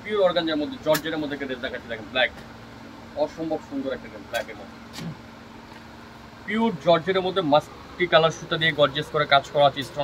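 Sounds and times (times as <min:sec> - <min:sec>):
background hum with low tone: 0:00.0 - 0:10.0.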